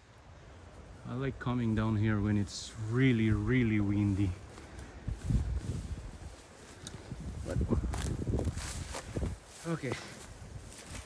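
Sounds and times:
footsteps crunching through dry grass: 0:00.6 - 0:11.0
wind buffeting microphone: 0:01.3 - 0:11.0.

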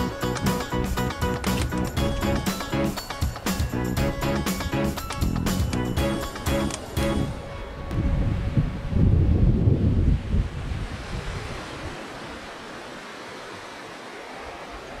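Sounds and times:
wind rumbling on microphone: 0:07.0 - 0:15.0
surf washing over sand: 0:07.4 - 0:15.0.

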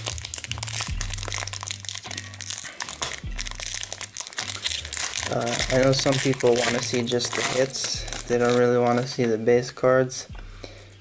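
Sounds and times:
foil wrapper crinkling: 0:00.0 - 0:09.4
background music with bass line: 0:00.0 - 0:11.0.

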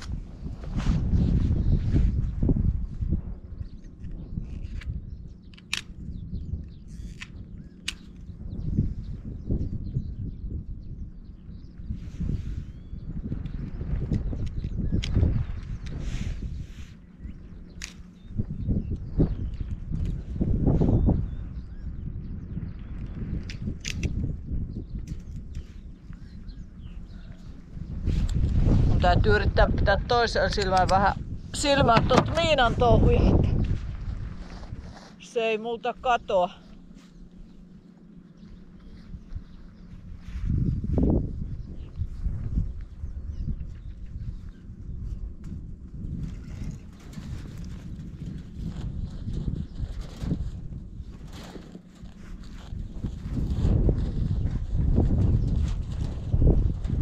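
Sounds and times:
wind buffeting microphone: 0:00.0 - 0:57.0
sharp clicks and snaps: 0:03.8 - 0:05.9, 0:06.9 - 0:08.3, 0:23.0 - 0:24.2.

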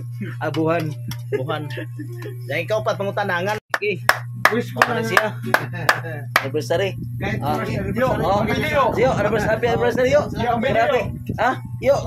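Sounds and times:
steady low hum: 0:00.0 - 0:12.0
people talking: 0:00.2 - 0:12.0.

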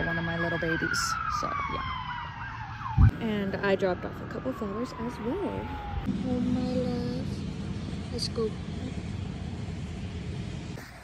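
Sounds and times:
low rumbling noise: 0:02.8 - 0:10.8.

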